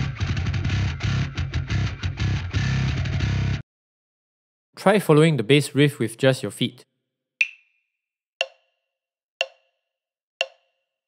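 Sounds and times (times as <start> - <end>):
metronome clicks: 7.4 - 7.7, 9.4 - 9.6, 10.4 - 10.6.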